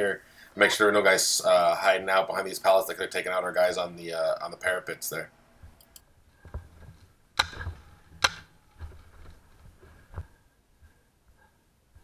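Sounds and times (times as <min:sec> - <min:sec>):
paintball marker firing: 0:07.4 - 0:08.5.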